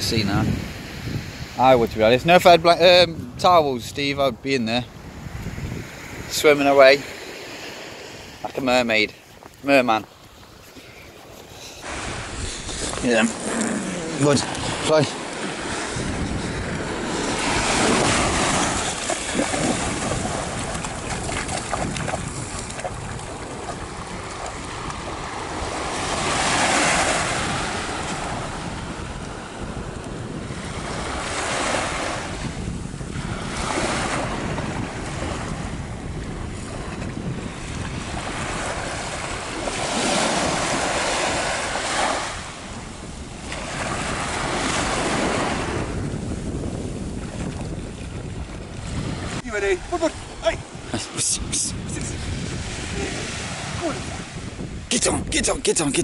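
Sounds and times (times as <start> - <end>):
waves breaking on sandy shore: 0.0 - 56.0
wind buffeting microphone: 0.0 - 56.0.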